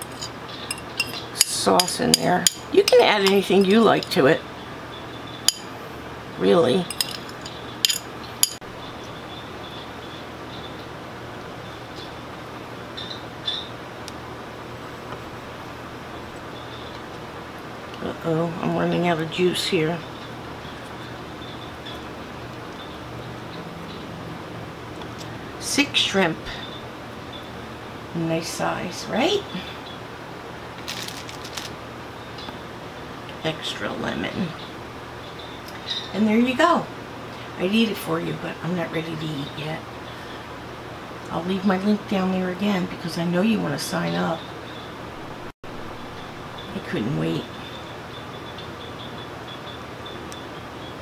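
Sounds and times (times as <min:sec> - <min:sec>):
metal utensil clinking on glass: 0:00.0 - 0:04.2, 0:06.8 - 0:08.6
room noise: 0:00.0 - 0:42.3.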